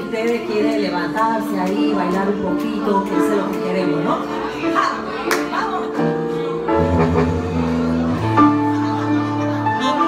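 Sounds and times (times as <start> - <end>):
held keyboard chords: 0.1 - 10.0
low bass notes: 6.7 - 8.9.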